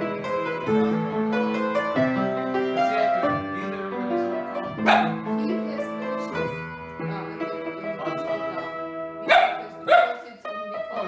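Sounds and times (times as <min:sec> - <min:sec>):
upright piano playing: 0:00.0 - 0:11.0
dog barking: 0:04.8 - 0:05.2, 0:09.2 - 0:10.3.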